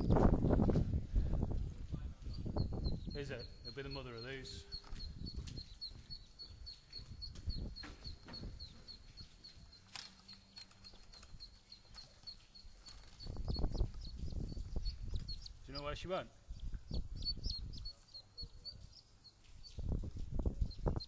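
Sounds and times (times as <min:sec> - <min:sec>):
ducklings peeping: 0:02.2 - 0:16.0, 0:16.6 - 0:21.0.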